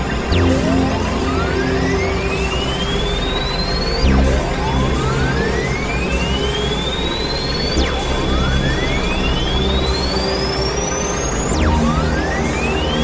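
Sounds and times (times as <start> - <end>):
pure tone gliding upward: 0.0 - 13.0
steady high tone: 0.0 - 13.0.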